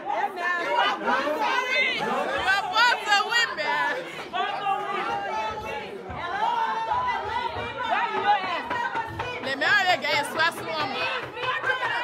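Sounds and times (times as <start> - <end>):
crowd talking and shouting: 0.0 - 12.0.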